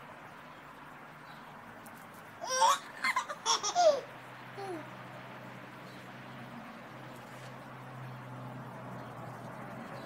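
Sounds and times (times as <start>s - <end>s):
boy laughing in squealing bursts: 2.4s - 4.8s.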